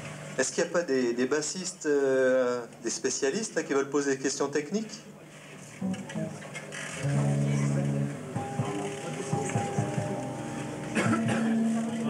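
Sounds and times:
electric bass plucked notes: 7.0 - 12.0.

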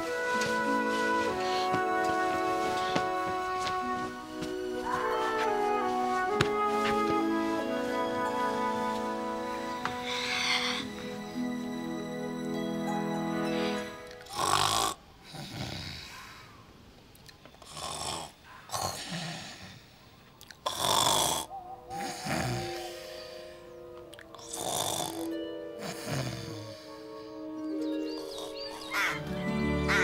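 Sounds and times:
soft background music: 0.0 - 14.9, 21.5 - 30.0
girl snoring loudly: 14.3 - 16.1, 17.7 - 19.4, 20.7 - 22.6, 24.4 - 26.7.

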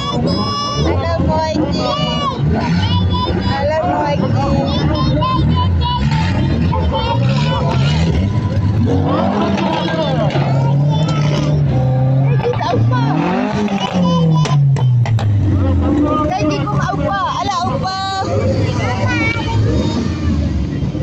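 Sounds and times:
crowd chatter: 0.0 - 21.0
engine revving: 0.0 - 21.0
race car engines running: 0.0 - 21.0.

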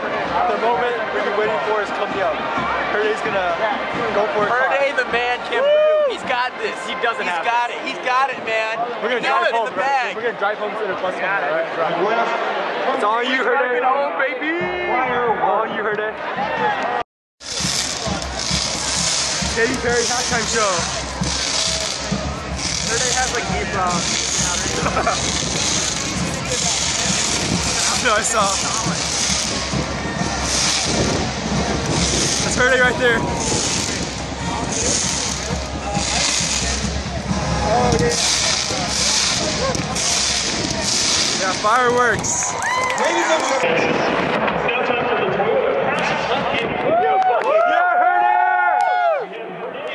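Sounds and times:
stadium crowd: 0.0 - 49.9
spark fountains hissing bursts: 17.4 - 29.8, 30.4 - 31.1, 33.4 - 37.0, 38.1 - 42.4
hiss of spark fountains: 38.1 - 41.6.

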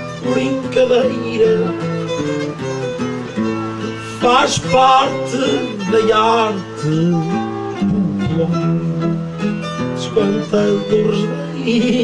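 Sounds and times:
acoustic guitar melody: 0.0 - 12.0.

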